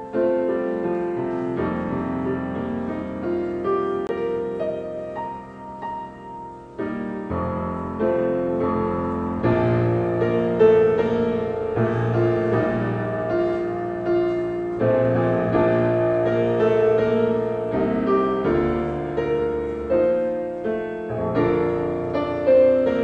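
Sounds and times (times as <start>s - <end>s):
slow grand piano piece: 0.0s - 23.0s.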